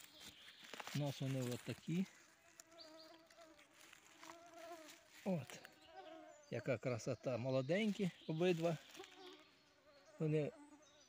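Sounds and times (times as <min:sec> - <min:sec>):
flying insect buzzing: 0:02.2 - 0:06.6, 0:08.6 - 0:11.0.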